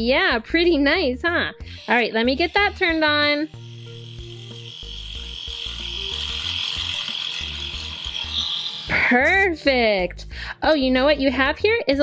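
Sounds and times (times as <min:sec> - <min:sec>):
soft background music: 0:00.0 - 0:12.0
electric toothbrush buzzing: 0:01.3 - 0:10.2.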